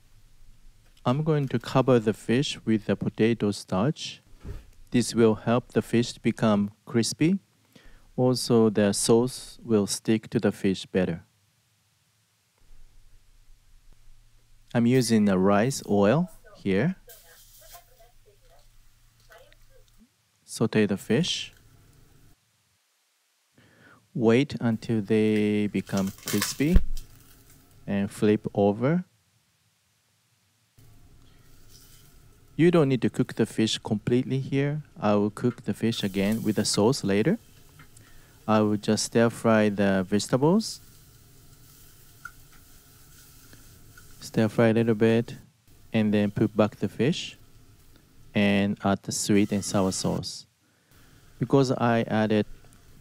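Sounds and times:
fish sizzling in hot oil: 0:17.0 - 0:19.1, 0:26.0 - 0:27.8, 0:30.8 - 0:32.6, 0:35.9 - 0:48.6, 0:50.9 - 0:51.5.

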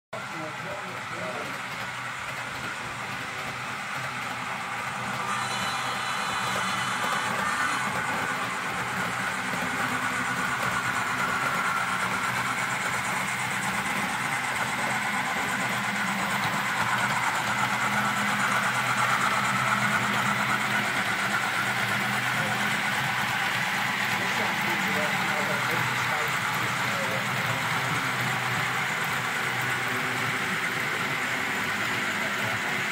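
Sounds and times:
model train hum: 0:00.2 - 0:32.9
wheels on rails: 0:00.2 - 0:32.9.

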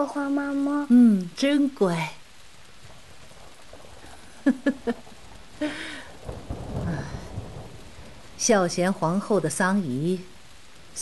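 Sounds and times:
steady rain: 0:00.0 - 0:11.0
thunder rolling: 0:00.0 - 0:11.0.

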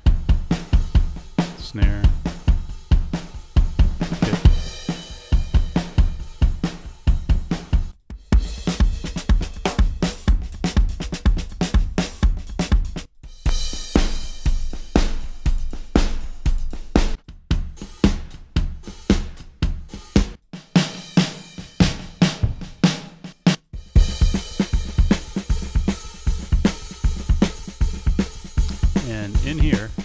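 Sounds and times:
drum kit playing grooves: 0:00.0 - 0:30.0.

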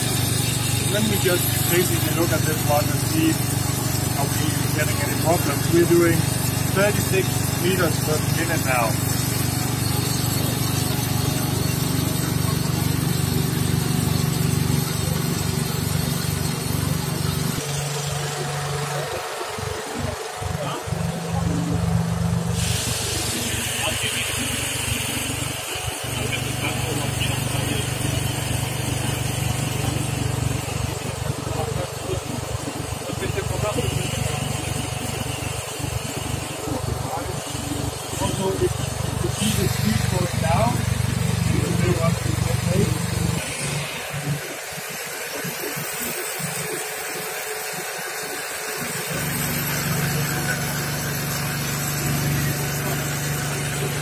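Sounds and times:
engine-driven equipment humming: 0:00.0 - 0:54.0.

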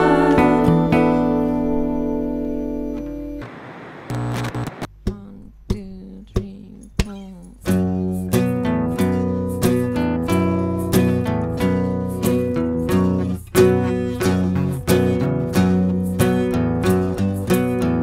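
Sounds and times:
acoustic guitar chord ringing: 0:00.0 - 0:03.4
guitar notes picked softly: 0:00.0 - 0:03.4, 0:06.4 - 0:18.0
rhythmic guitar strumming: 0:00.0 - 0:03.4, 0:05.8 - 0:18.0.

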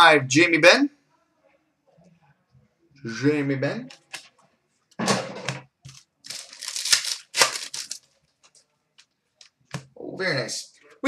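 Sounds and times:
wrapper ripping and crinkling: 0:05.9 - 0:08.6.

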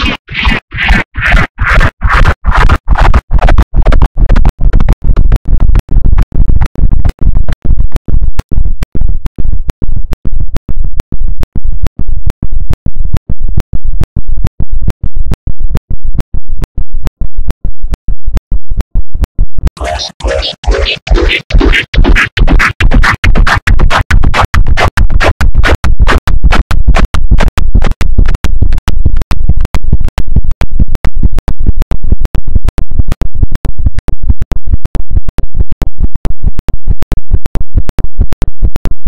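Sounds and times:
distorted bass-heavy stuttering audio: 0:00.0 - 0:39.0
deep repeated boom: 0:19.5 - 0:28.0.

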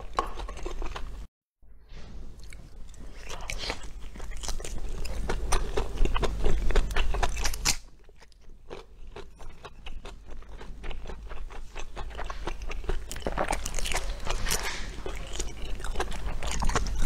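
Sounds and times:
close-miked chewing and biting: 0:00.0 - 0:01.2, 0:02.4 - 0:17.0.

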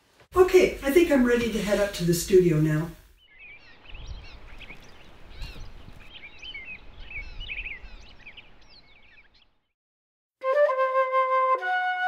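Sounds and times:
songbirds chirping: 0:00.6 - 0:09.8.

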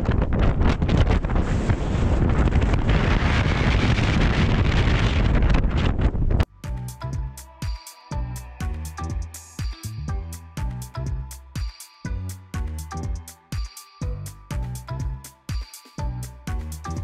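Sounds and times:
wind buffeting microphone: 0:00.0 - 0:06.5
background music: 0:06.5 - 0:17.0.

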